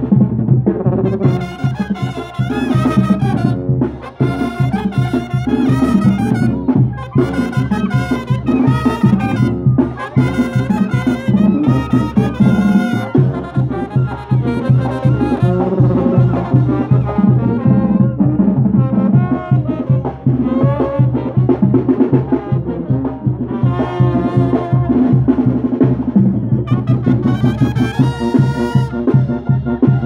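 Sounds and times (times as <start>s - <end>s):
brass band playing: 0.0s - 30.0s
steady drum beat: 0.0s - 30.0s.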